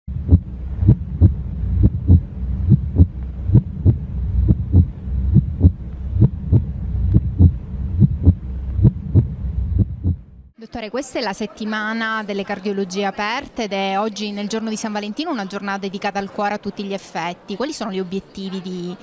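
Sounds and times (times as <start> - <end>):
heartbeat: 0.1 - 10.4
low hum: 0.1 - 10.5.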